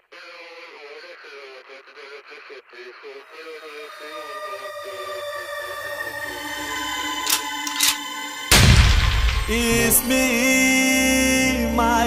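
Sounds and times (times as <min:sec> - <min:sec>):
held music tones: 0:03.3 - 0:12.0
low rumble: 0:08.5 - 0:10.9
person speaking: 0:09.4 - 0:12.0.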